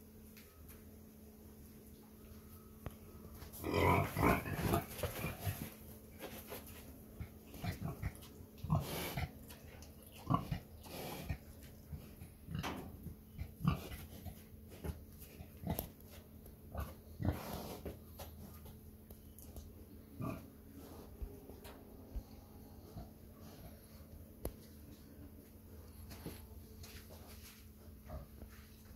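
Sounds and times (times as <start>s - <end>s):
pig grunting: 3.6s - 5.7s, 7.5s - 9.4s, 10.1s - 11.5s.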